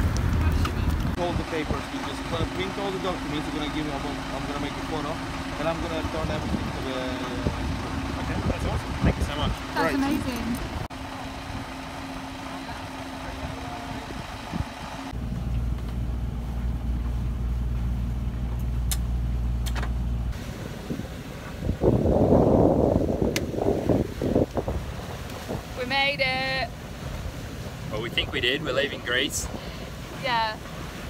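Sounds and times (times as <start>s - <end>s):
wind rushing over microphone: 0.0s - 2.0s, 6.0s - 10.9s, 20.3s - 26.6s
boat engine humming: 0.0s - 31.0s.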